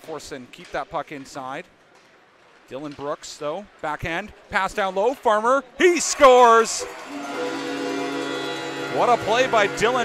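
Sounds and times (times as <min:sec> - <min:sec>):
held chord of steady tones: 0:07.1 - 0:10.0.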